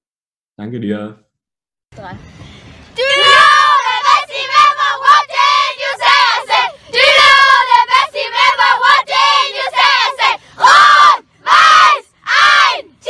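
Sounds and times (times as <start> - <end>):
children shouting and chanting: 3.0 - 13.0.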